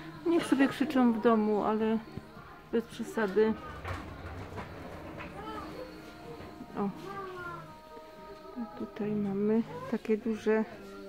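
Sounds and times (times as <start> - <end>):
indistinct shoppers' voices: 0.0 - 11.0.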